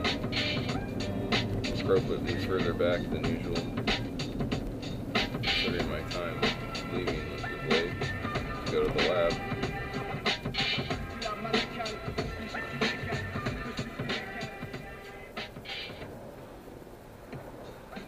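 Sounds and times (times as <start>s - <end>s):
road noise rumble: 0.0s - 18.0s
song from car stereo: 0.0s - 18.0s.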